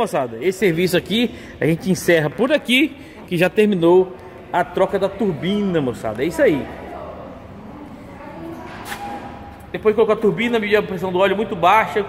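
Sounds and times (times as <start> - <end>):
workshop background noise: 0.0 - 12.0.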